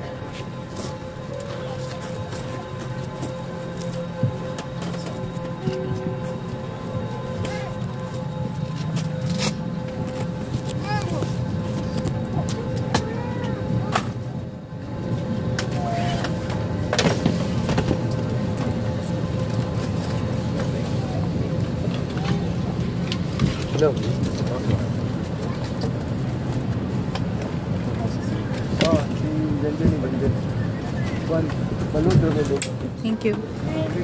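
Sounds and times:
air conditioning hum: 0.0s - 34.0s
murmured passenger voices: 0.0s - 34.0s.

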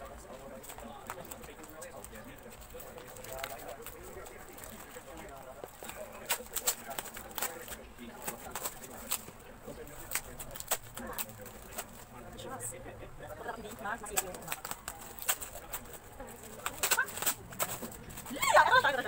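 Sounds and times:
wrapping paper tearing: 5.8s - 12.1s, 14.1s - 18.4s.

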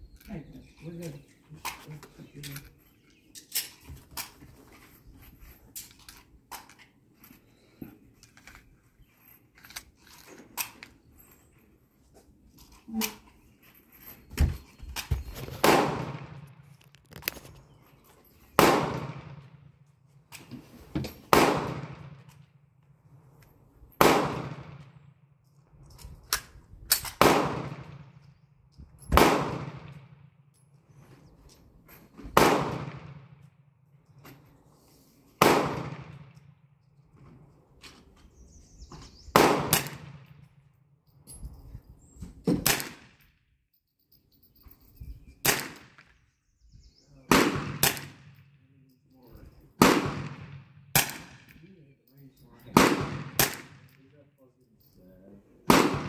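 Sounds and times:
rifle shots: 15.6s - 16.5s, 18.6s - 19.6s, 21.3s - 22.2s, 24.0s - 24.8s, 26.9s - 28.0s, 29.1s - 30.1s, 32.3s - 33.3s, 35.4s - 36.3s, 39.3s - 40.3s, 42.6s - 43.2s, 45.4s - 46.0s, 47.3s - 48.4s, 49.8s - 51.6s, 52.7s - 53.9s, 55.7s - 56.0s.

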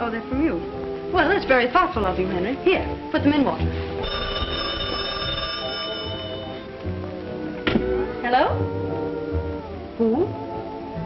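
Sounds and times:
background music: 0.0s - 11.0s
telephone bell ringing: 4.0s - 6.7s.

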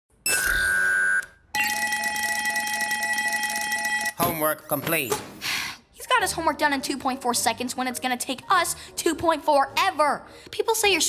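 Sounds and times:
electronic beep: 0.3s - 1.8s.

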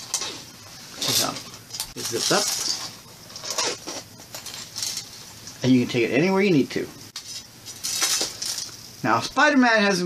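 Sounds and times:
candies rattling in a tin: 1.0s - 3.5s.

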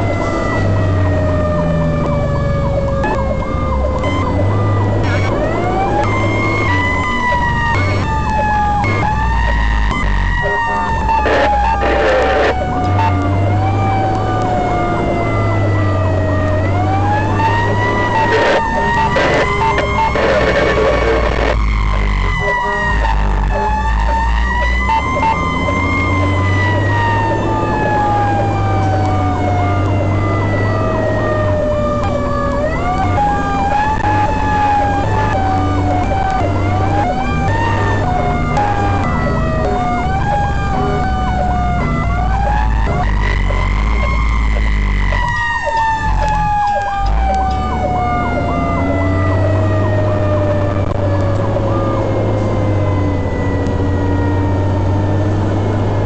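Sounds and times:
fire engine siren wailing: 0.0s - 56.0s
truck low rumble: 0.0s - 56.0s.

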